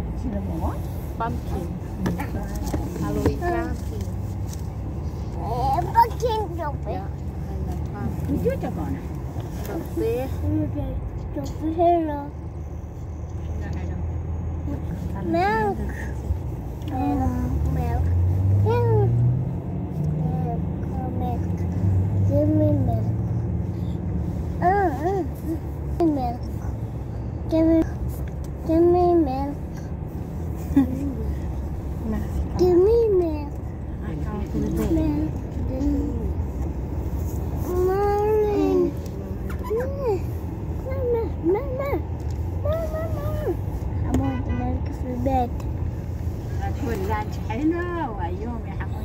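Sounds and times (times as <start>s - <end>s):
car engine and road noise: 0.0s - 49.0s.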